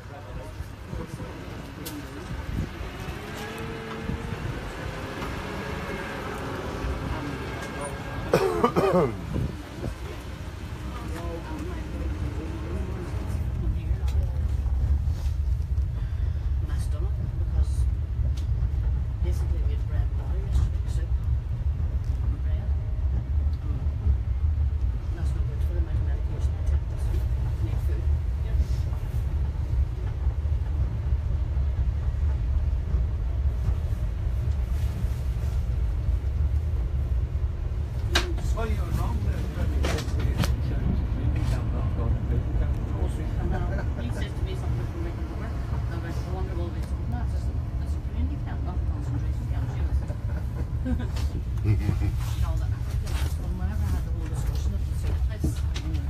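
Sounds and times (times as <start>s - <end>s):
land train rumbling: 0.0s - 56.0s.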